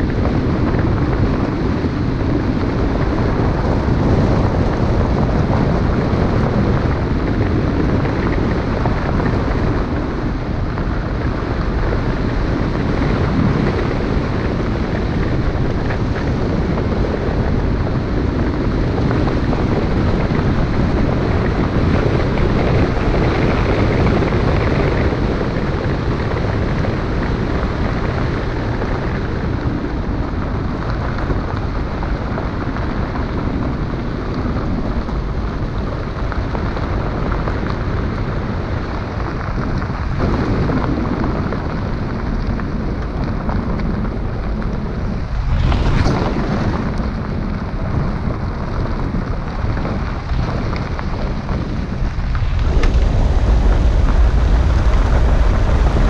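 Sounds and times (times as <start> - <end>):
tyres rumbling on gravel: 0.0 - 56.0
wind noise: 0.0 - 56.0.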